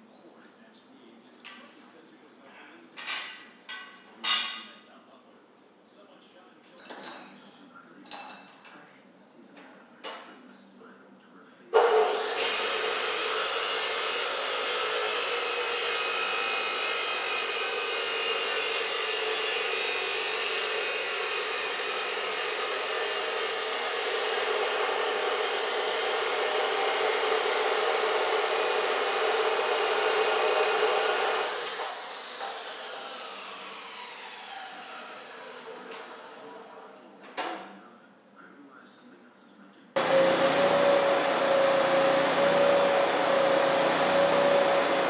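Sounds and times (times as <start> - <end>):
chop saw cutting metal: 11.8 - 36.5, 40.0 - 45.0
saw blade coasting down whine: 11.9 - 36.2, 40.0 - 45.0.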